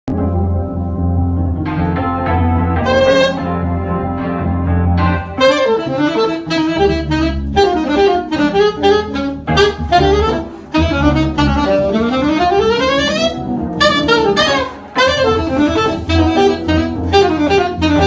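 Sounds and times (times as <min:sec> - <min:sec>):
saxophone playing jazz phrases: 0:01.7 - 0:18.0.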